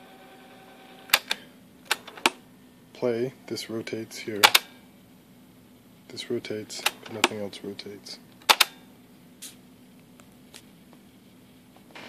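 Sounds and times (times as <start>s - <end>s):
cassette transport clicks: 4.4s - 4.7s, 6.8s - 7.4s, 8.4s - 8.8s.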